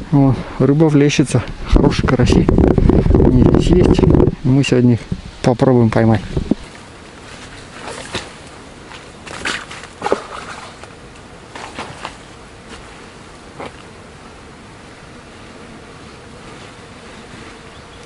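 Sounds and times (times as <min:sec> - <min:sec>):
mosquitoes whining: 0:12.2 - 0:18.0.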